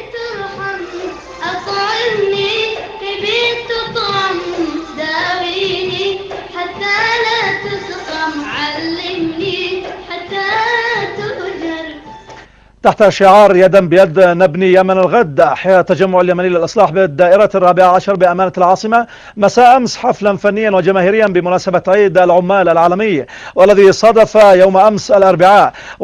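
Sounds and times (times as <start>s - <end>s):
boy singing into microphone: 0.0s - 12.1s.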